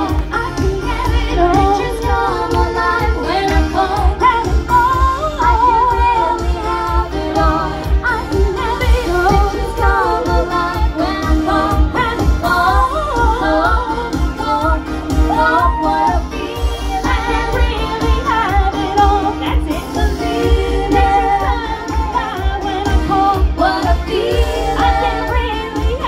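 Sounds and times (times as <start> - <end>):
amplified music with steady beat: 0.0 - 26.0
women singing into microphones: 0.0 - 26.0.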